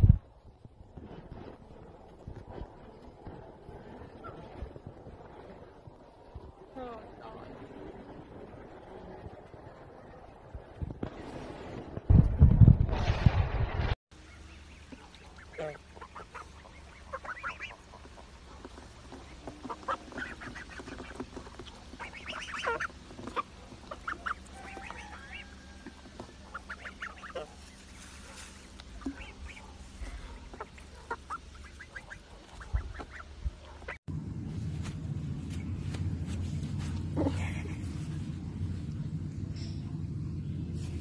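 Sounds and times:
geese honking: 14.2s - 28.0s, 28.6s - 34.0s.

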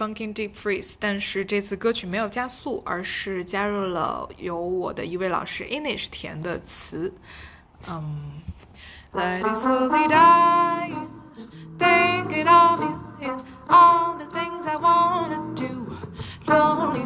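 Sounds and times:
woman singing jazz melody: 9.1s - 17.0s
instrumental accompaniment: 9.2s - 17.0s.

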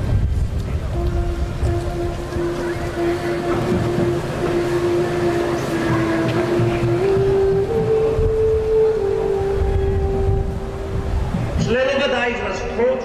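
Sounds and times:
street and wind rumble: 0.0s - 13.0s
long held musical note: 0.7s - 11.8s.

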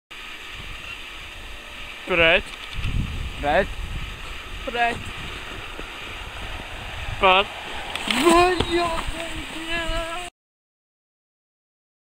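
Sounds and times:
steady hiss: 0.1s - 10.3s
wind buffeting microphone: 0.4s - 10.3s.

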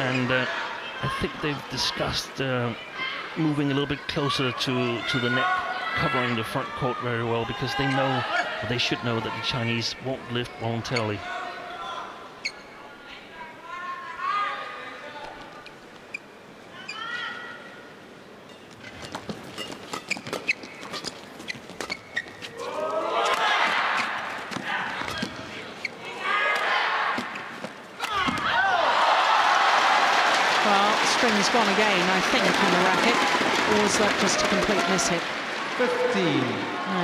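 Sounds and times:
crowd shouting and cheering: 0.0s - 9.8s, 22.5s - 37.0s.

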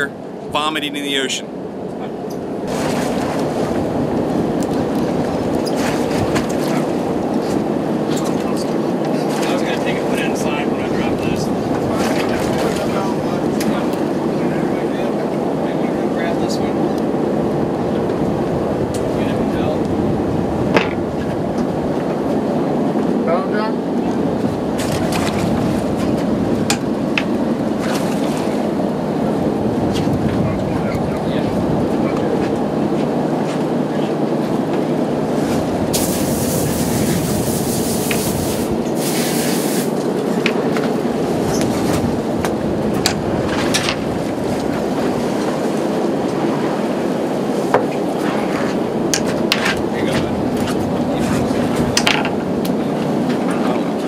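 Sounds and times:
boat engine running: 0.0s - 54.0s
wind and sea noise: 0.0s - 54.0s
hiss: 36.0s - 39.9s.

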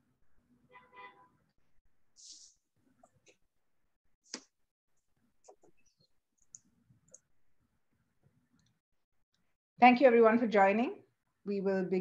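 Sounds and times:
woman speaking: 9.8s - 12.0s.

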